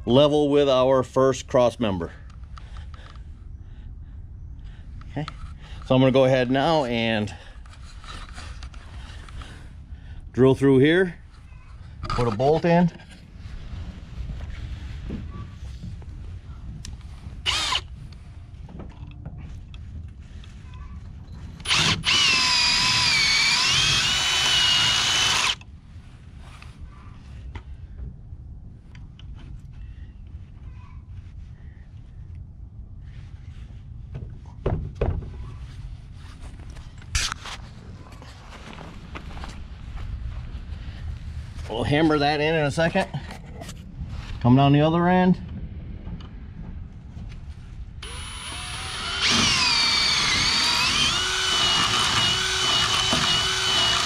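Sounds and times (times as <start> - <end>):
power drill boring through wood: 17.4 - 17.9, 21.6 - 25.6, 48.0 - 54.0.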